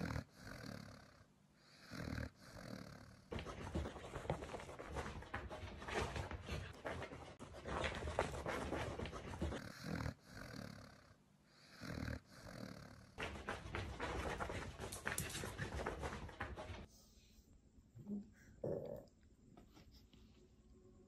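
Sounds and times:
dog sniffing and breathing: 0:00.0 - 0:17.5.

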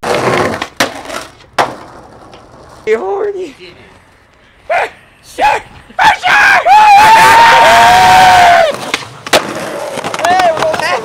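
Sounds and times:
young men yelling: 0:04.7 - 0:08.8.

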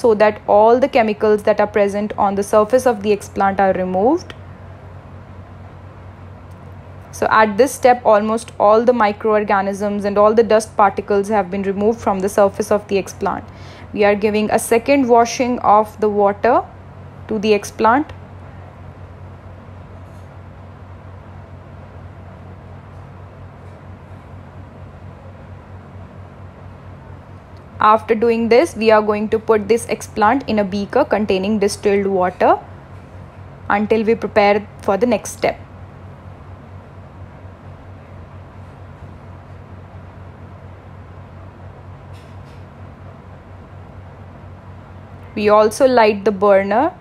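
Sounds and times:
airflow cabinet blower humming: 0:00.0 - 0:47.0.

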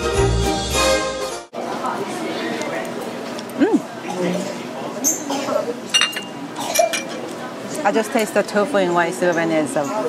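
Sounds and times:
chopsticks clinking on dish: 0:05.9 - 0:07.3.

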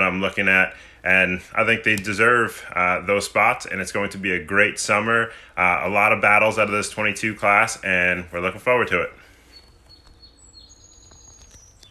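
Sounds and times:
person speaking: 0:00.0 - 0:09.2.

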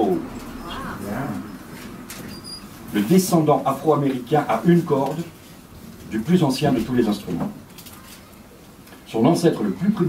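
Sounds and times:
low murmured voice: 0:00.6 - 0:01.5.

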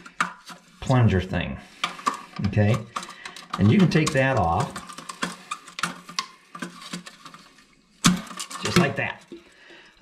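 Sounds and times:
toilet flapper chain clicking: 0:01.9 - 0:07.5.

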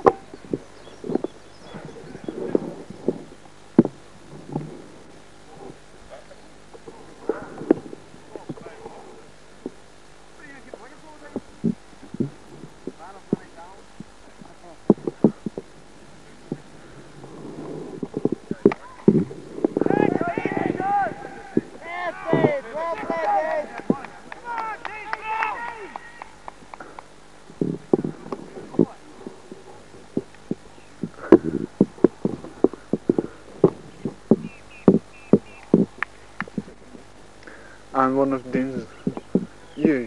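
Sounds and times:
distant voices calling out: 0:00.0 - 0:40.0.

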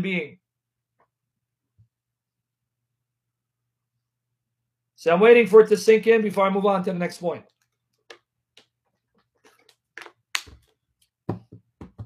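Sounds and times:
handling taps and knocks: 0:07.6 - 0:12.0.

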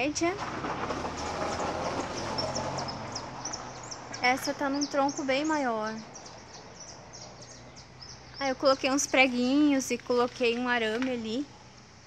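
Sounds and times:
outdoor background hiss: 0:00.0 - 0:12.0
small birds chirping: 0:01.4 - 0:11.5.

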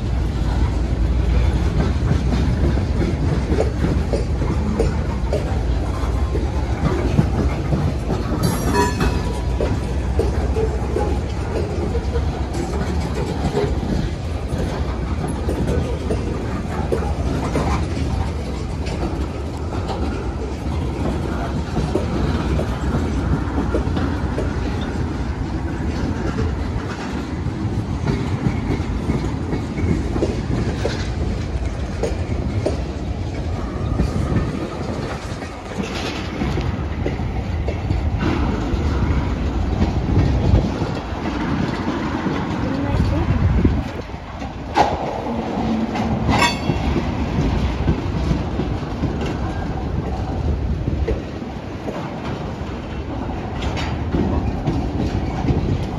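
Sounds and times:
freight train rumbling past: 0:00.0 - 0:55.9
wheels clicking over rail joints: 0:00.0 - 0:55.9
sharp metal clank: 0:08.4 - 0:09.4.

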